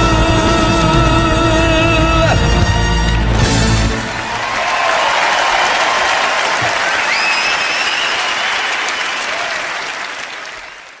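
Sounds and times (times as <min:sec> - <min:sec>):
audience applauding: 0:03.9 - 0:11.0
rising whistle: 0:07.0 - 0:09.3.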